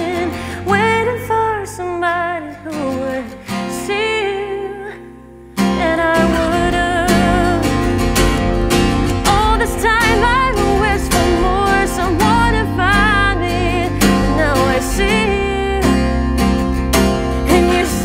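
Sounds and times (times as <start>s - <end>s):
woman singing wordlessly: 0.0s - 8.2s, 9.2s - 16.2s, 17.4s - 18.0s
acoustic guitar song: 0.0s - 18.0s.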